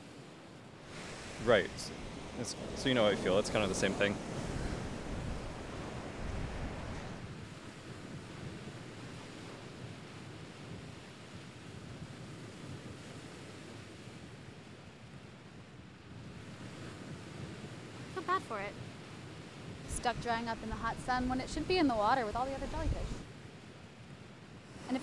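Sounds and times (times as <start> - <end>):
ocean surf washing in: 0.7 - 13.9, 16.3 - 23.3, 24.6 - 25.0
wind buffeting microphone: 0.8 - 13.5, 16.0 - 23.3.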